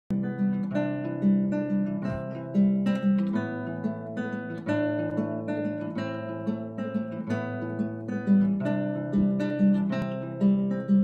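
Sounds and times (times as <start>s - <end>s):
acoustic guitar plucking chords: 0.1s - 11.0s.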